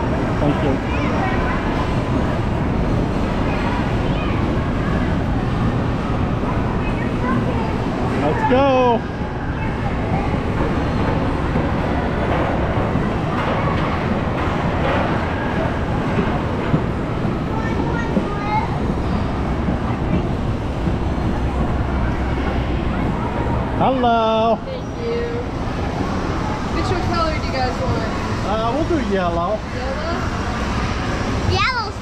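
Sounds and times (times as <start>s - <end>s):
crowd noise: 0.0s - 32.0s
low machinery rumble: 0.0s - 32.0s.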